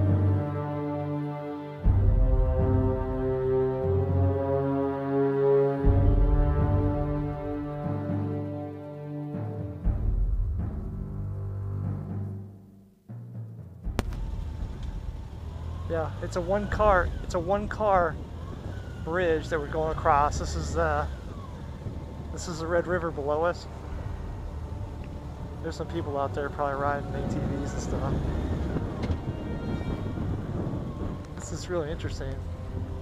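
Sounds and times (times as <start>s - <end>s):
background music: 0.0s - 33.0s
motorcycle engine and wind rumble: 14.1s - 33.0s.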